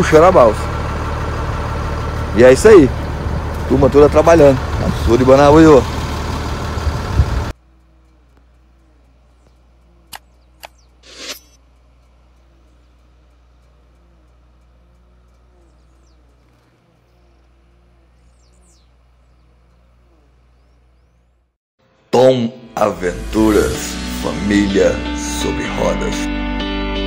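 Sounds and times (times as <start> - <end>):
steady low hum: 7.1 - 21.5
faint bird chirps: 7.6 - 11.6, 12.3 - 21.5
sharp clicks: 8.0 - 17.5.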